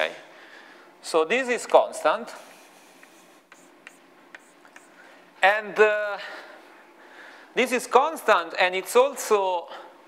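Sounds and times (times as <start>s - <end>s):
chalk scratching on blackboard: 3.0s - 4.9s
chalk tapping on board: 3.0s - 4.9s.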